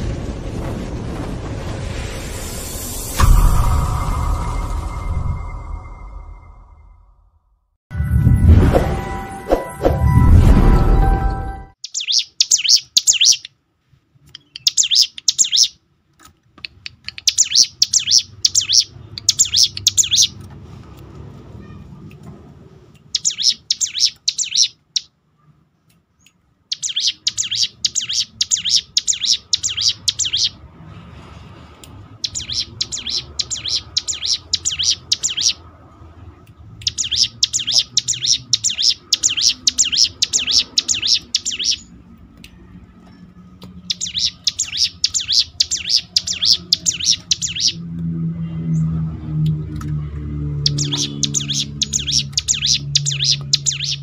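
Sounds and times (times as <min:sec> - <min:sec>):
low drone: 0:00.0 - 0:11.8, 0:45.5 - 0:54.0
bird chattering song: 0:11.8 - 0:13.5, 0:14.4 - 0:15.8, 0:16.6 - 0:20.4, 0:23.0 - 0:25.1, 0:26.7 - 0:30.6, 0:32.2 - 0:35.6, 0:36.8 - 0:41.9, 0:43.8 - 0:47.8, 0:50.6 - 0:54.0.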